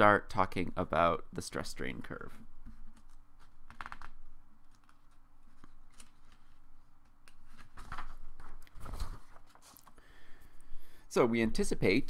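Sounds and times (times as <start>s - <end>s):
paper rustling: 2.6s - 10.0s.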